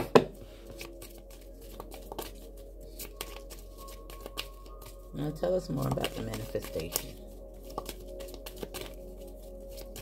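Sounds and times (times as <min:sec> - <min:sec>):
cards being shuffled: 0:00.0 - 0:05.1, 0:05.8 - 0:10.0
faint background music: 0:00.0 - 0:10.0
cards snapping: 0:00.8 - 0:04.6, 0:06.0 - 0:09.0.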